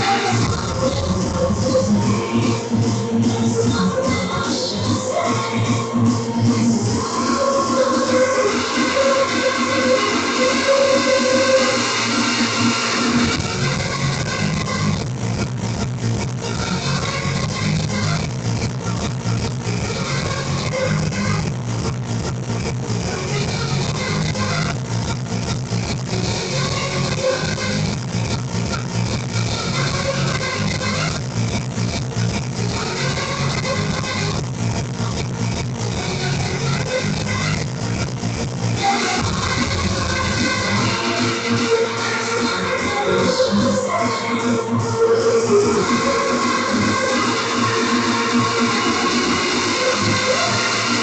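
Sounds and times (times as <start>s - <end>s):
hardstyle dance music: 0.0s - 51.0s.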